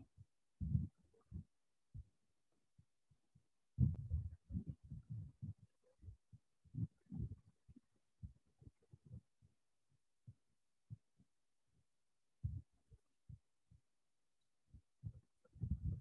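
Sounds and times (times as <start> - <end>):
faint low thuds and bumps: 0.6 - 1.4, 3.8 - 7.4, 12.4 - 12.6, 15.0 - 16.0.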